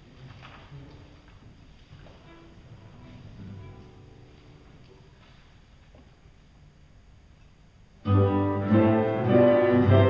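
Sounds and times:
hall room noise: 0:00.0 - 0:10.0
chamber ensemble held notes: 0:08.0 - 0:10.0.

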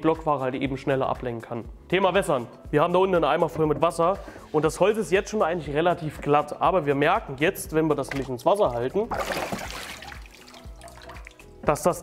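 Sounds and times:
water sloshing in a plastic tub: 0:08.0 - 0:11.4.

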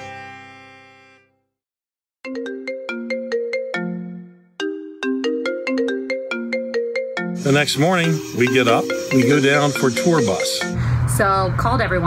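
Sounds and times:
phone alarm ringtone: 0:02.3 - 0:10.8.

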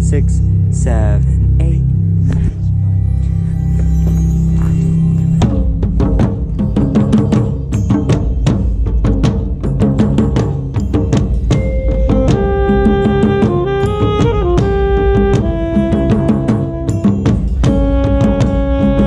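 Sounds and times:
low keyboard chords: 0:00.0 - 0:19.0
mallet percussion and drum strikes: 0:03.4 - 0:19.0.

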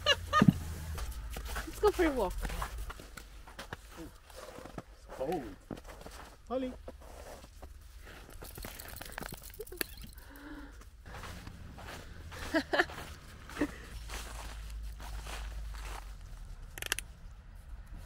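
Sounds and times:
steady low rumble: 0:00.0 - 0:04.0
footsteps crunching through snow: 0:00.2 - 0:08.9, 0:11.0 - 0:16.6.

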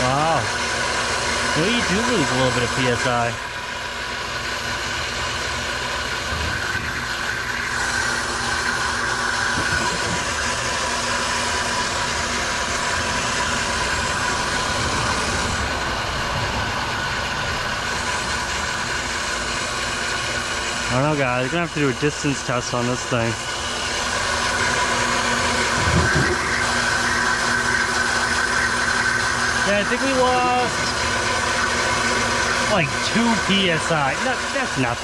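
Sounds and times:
pump running: 0:00.0 - 0:35.0
water spraying from nozzle: 0:00.0 - 0:35.0.

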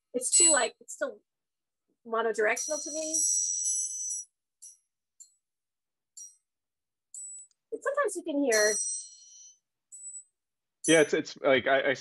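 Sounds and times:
metal triangle ringing: 0:02.4 - 0:04.2, 0:07.2 - 0:09.5.

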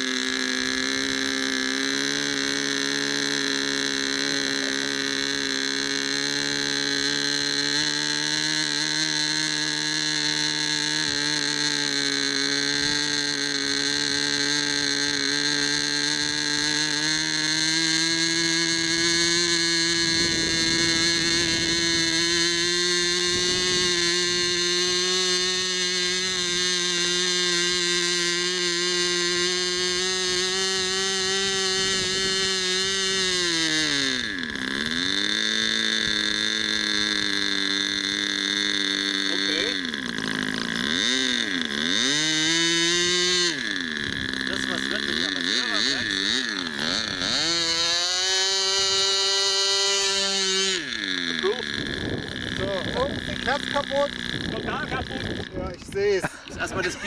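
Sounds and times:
small model plane engine running: 0:00.0 - 0:57.0.

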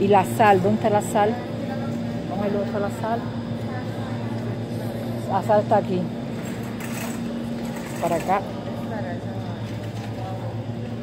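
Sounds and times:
shopping cart wheels rolling: 0:06.3 - 0:08.6.

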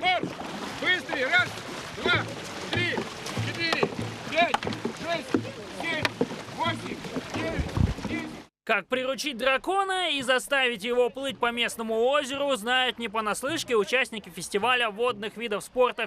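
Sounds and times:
low paddle thumps: 0:00.0 - 0:08.5
water wash from paddling: 0:00.0 - 0:08.5.

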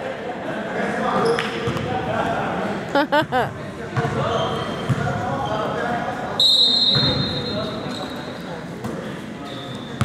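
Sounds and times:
spectators talking: 0:00.0 - 0:10.0.

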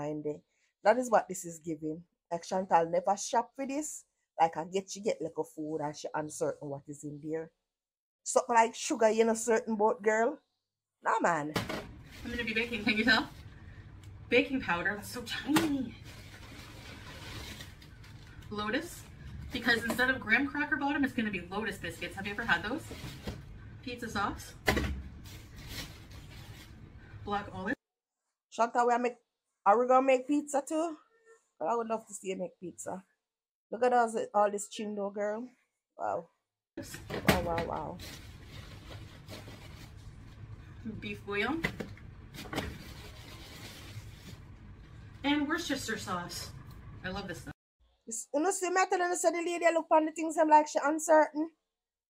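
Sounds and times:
low background hum: 0:11.4 - 0:27.8, 0:36.8 - 0:47.6
plastic bag rustling: 0:11.7 - 0:13.5, 0:15.7 - 0:19.5, 0:25.2 - 0:26.9, 0:37.8 - 0:40.5, 0:42.3 - 0:44.5.

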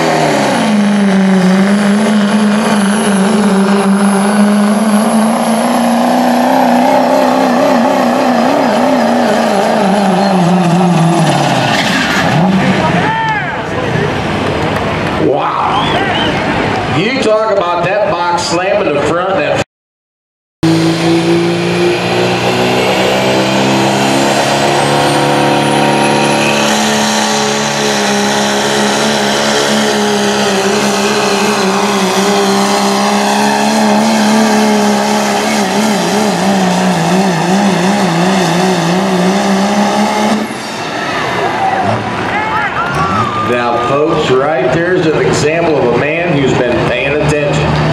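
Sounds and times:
diesel truck engines at full throttle: 0:00.0 - 0:19.6, 0:20.6 - 0:47.9.

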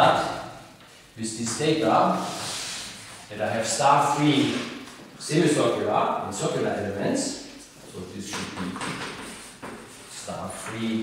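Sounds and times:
chalk scratching on blackboard: 0:02.2 - 0:03.2, 0:09.0 - 0:10.3.

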